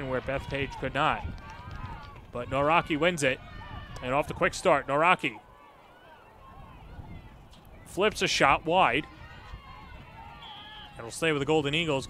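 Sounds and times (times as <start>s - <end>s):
umpire's whistle: 10.4s - 11.0s.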